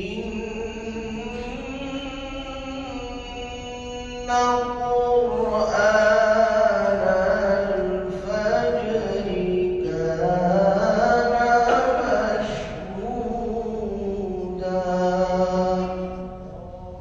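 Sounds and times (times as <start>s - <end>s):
man reciting melodically: 0.0s - 17.0s.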